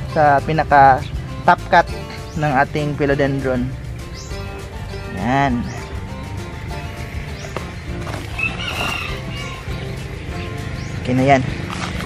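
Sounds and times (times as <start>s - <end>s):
background music: 0.0s - 12.0s
rooster crowing: 8.3s - 9.8s.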